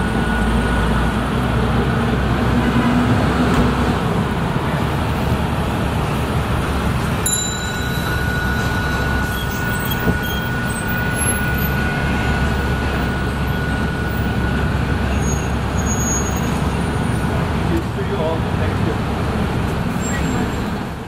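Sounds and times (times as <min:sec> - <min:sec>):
city street traffic: 0:00.0 - 0:21.0
heavy vehicles rumbling: 0:00.0 - 0:21.0
thin steady whine: 0:06.2 - 0:17.4.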